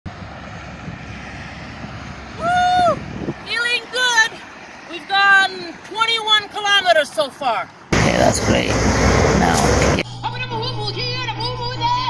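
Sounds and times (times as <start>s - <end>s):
wind buffeting microphone: 0.1s - 4.9s.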